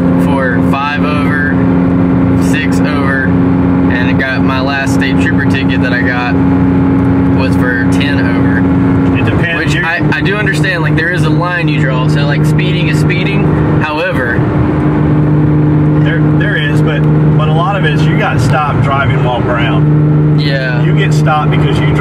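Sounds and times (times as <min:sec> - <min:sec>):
car engine at highway speed: 0:00.0 - 0:22.0
people talking: 0:00.2 - 0:01.6, 0:02.4 - 0:03.3, 0:03.9 - 0:06.4, 0:07.4 - 0:14.4, 0:16.0 - 0:19.8, 0:20.4 - 0:22.0.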